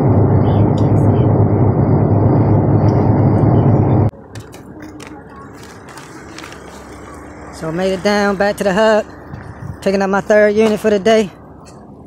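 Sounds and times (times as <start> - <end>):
outdoor background noise: 0.0 - 12.0
road and engine noise in car: 0.0 - 12.0.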